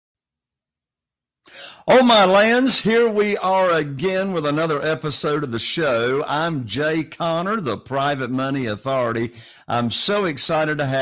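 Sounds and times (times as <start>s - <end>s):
man breathy throat sound: 1.5s - 1.9s, 9.3s - 9.7s
man speaking: 1.6s - 11.0s.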